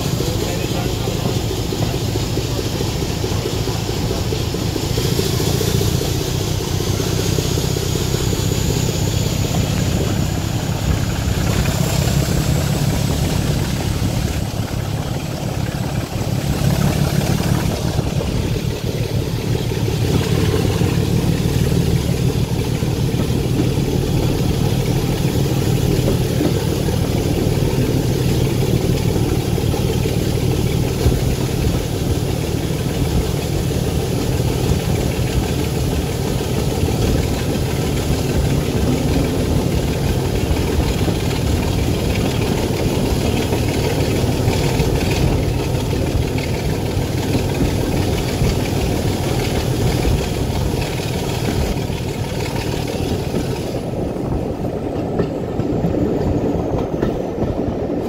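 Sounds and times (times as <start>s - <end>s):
diesel locomotive engine working: 0.0s - 58.0s
train running noise: 0.0s - 58.0s.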